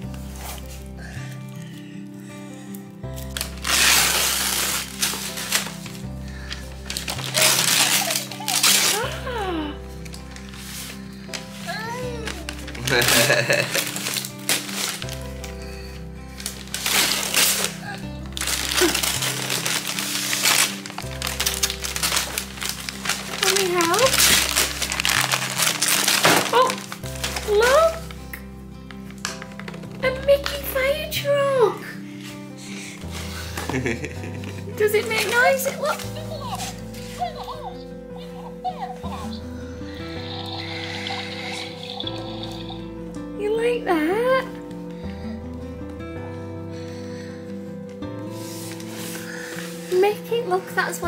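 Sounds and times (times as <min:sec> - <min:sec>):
wrapping paper tearing: 0:02.6 - 0:30.8, 0:33.0 - 0:43.1, 0:48.3 - 0:50.0
small child vocal sounds: 0:11.7 - 0:12.6
background music with steady beat: 0:31.6 - 0:35.7, 0:42.2 - 0:51.0.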